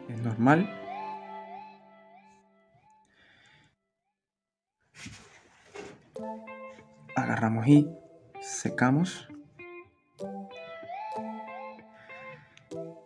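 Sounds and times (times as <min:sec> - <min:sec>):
music with sliding notes: 0:06.1 - 0:13.0.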